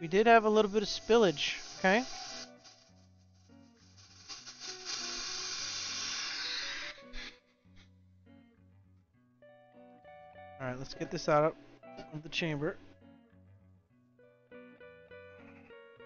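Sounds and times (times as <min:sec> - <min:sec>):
hiss of air from release valve: 0:00.0 - 0:07.4
quiet guitar music: 0:07.5 - 0:16.0.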